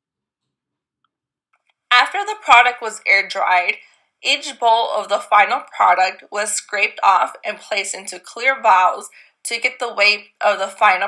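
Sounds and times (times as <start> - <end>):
woman speaking: 1.9 - 11.0.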